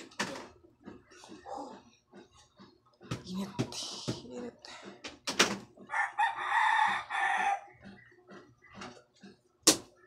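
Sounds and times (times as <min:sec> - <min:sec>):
rooster crowing: 0:05.9 - 0:07.7.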